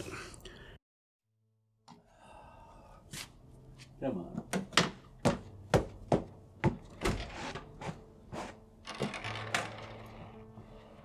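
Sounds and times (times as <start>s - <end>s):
faint steady music: 1.9s - 11.0s.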